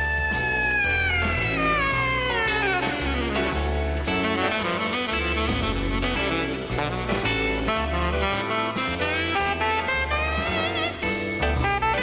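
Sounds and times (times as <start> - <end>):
alto saxophone sliding note: 0.0 - 12.0
bass notes: 0.0 - 12.0.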